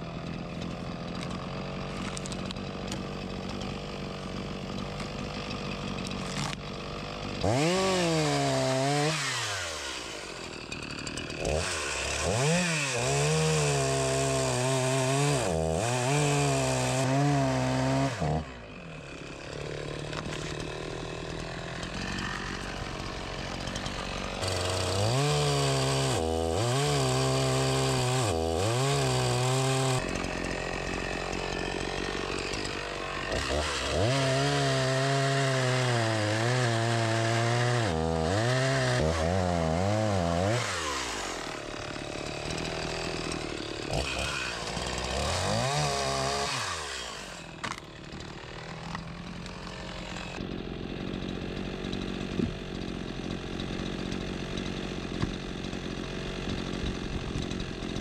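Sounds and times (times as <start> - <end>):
chainsaw cutting through logs: 0.0 - 58.0.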